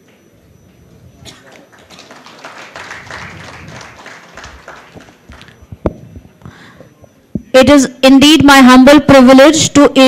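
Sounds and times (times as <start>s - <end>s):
small audience clapping: 1.3s - 5.7s.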